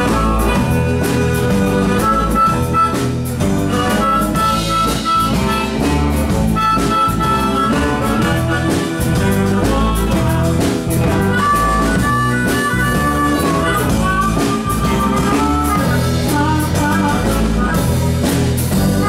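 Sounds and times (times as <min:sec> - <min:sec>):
blues band playing: 0:00.0 - 0:19.0
harmonica high held notes: 0:00.0 - 0:19.0.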